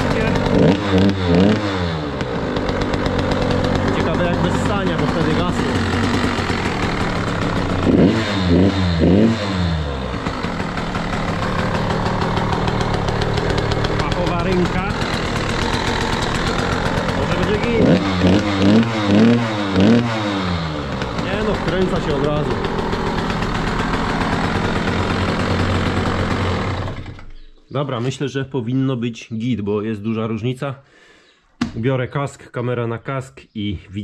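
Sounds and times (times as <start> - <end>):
engine throttle blips: 0.0 - 27.5
two-stroke engine running: 0.0 - 27.5.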